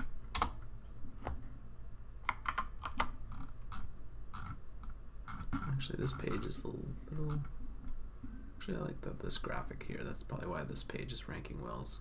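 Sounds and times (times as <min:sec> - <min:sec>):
computer keyboard typing: 0:00.0 - 0:00.6, 0:02.2 - 0:06.6.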